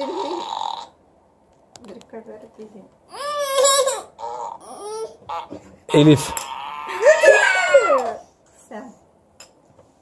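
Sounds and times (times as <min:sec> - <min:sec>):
electronic fart sound effect: 0:00.0 - 0:01.0.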